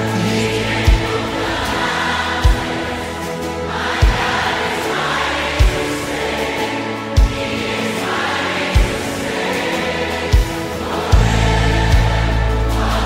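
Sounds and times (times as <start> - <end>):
many voices singing together: 0.0 - 13.0
worship band music: 0.0 - 13.0
deep drum beat: 10.4 - 12.5.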